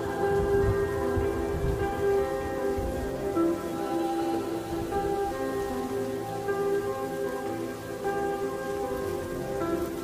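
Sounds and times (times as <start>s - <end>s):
rain pattering: 0.0s - 10.0s
slow reverbed lofi chords: 0.0s - 10.0s.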